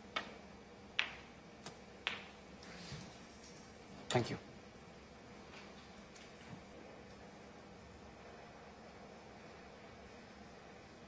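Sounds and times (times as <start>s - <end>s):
snooker balls clicking: 0.1s - 2.4s.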